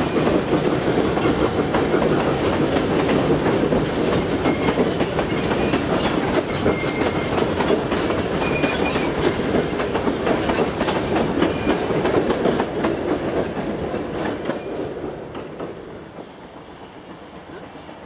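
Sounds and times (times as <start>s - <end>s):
train carriages rolling on rails: 0.0s - 18.0s.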